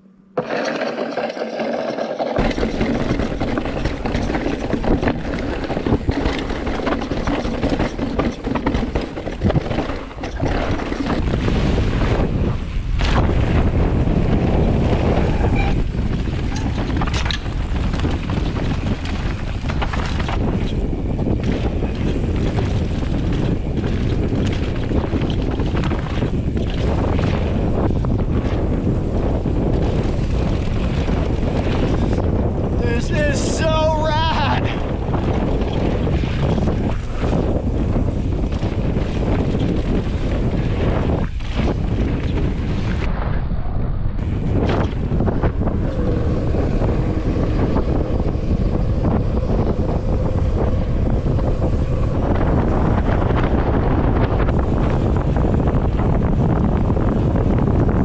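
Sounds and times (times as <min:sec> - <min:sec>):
bike rattling: 0:00.0 - 0:43.6, 0:44.2 - 0:58.0
tyres rolling on dirt: 0:00.4 - 0:43.2, 0:44.2 - 0:58.0
sharp knocks over bumps: 0:02.3 - 0:11.4
wind rushing over microphone: 0:02.4 - 0:58.0.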